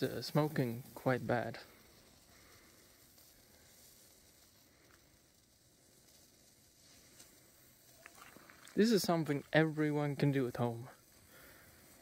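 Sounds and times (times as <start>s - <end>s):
burning mixture sizzling hiss: 0.0s - 12.0s.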